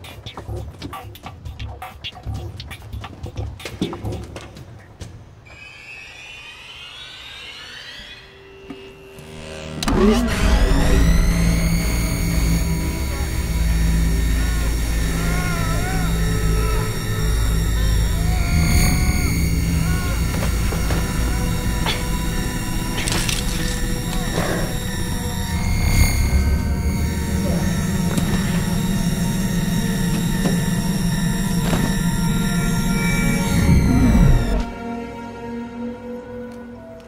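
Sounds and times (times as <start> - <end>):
rising whines: 5.5 - 36.2
low rumbling drone: 9.1 - 34.8
thin high tones: 10.4 - 34.6.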